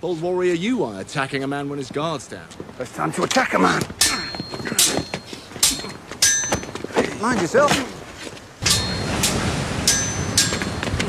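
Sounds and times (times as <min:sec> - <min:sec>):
swords clashing: 0:03.6 - 0:08.0, 0:08.6 - 0:11.0.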